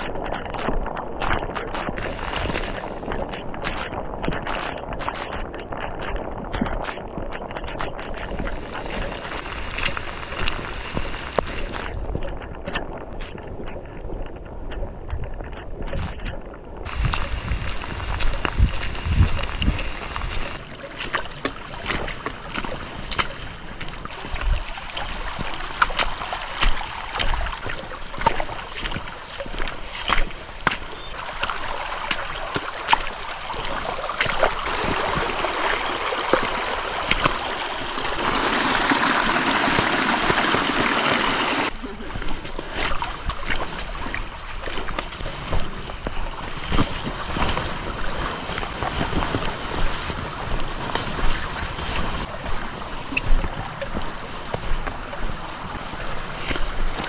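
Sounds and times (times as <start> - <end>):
wind buffeting microphone: 0.0 - 20.6
footsteps splashing through water: 0.0 - 57.0
water running down a trail: 0.0 - 57.0.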